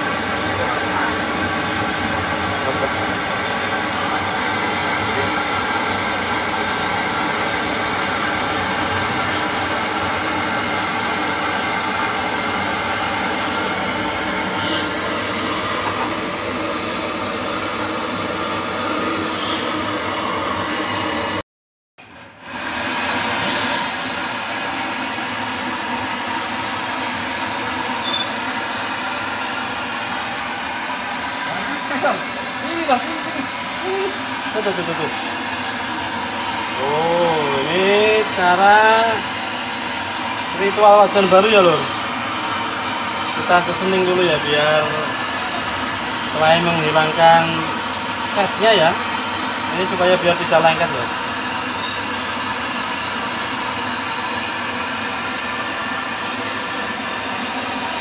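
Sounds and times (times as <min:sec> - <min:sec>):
gas burner rushing: 0:00.0 - 0:21.4, 0:22.0 - 0:58.0.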